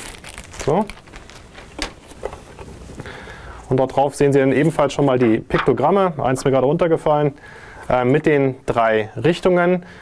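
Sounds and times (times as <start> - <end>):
plastic film crinkling: 0.0 - 3.0.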